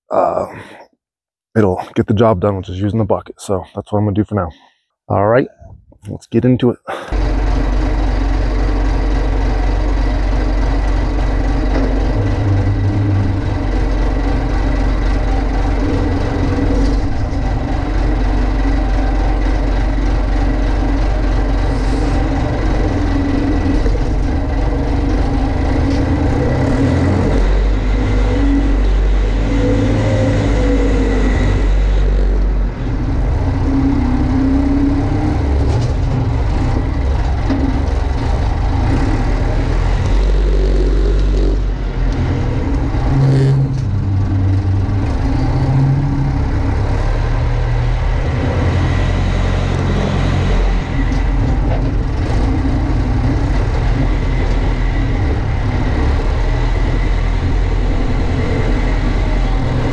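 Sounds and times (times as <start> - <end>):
diesel engine running: 7.1 - 59.9.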